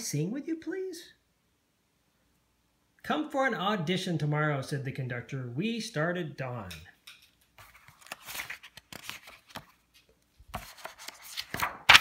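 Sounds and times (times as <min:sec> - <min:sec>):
paper pages rustling: 0:07.4 - 0:12.0.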